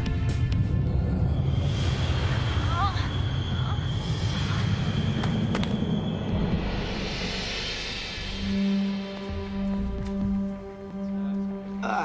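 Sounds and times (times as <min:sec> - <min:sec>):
tense film score: 0:00.0 - 0:12.0.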